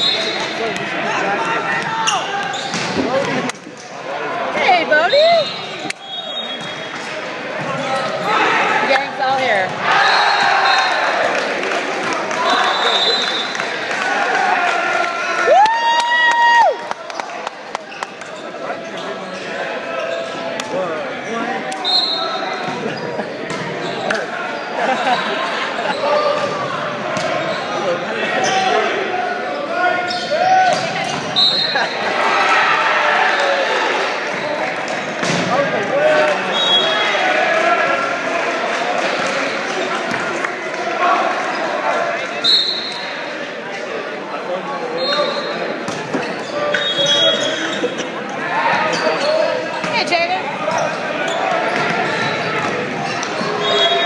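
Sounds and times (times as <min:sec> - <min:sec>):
crowd and players' voices: 0:00.0 - 0:54.0
sneaker squeaks on hardwood: 0:02.0 - 0:03.1, 0:05.4 - 0:07.0.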